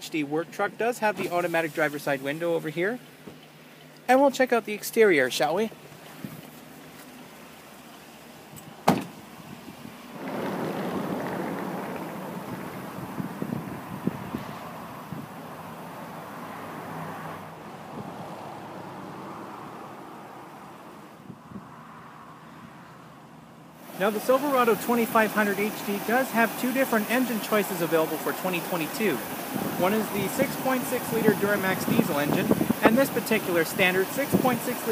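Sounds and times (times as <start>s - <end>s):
truck engine idling: 6.6s - 16.0s.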